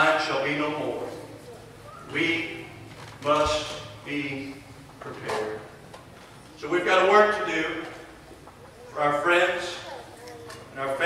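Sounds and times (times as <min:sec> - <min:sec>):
man preaching: 0:00.0 - 0:01.1, 0:02.1 - 0:05.7, 0:06.6 - 0:08.1, 0:08.9 - 0:09.8, 0:10.7 - 0:11.0.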